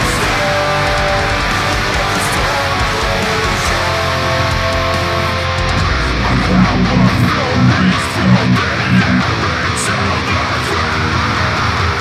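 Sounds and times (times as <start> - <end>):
distorted electric guitar chugging: 0.0 - 12.0.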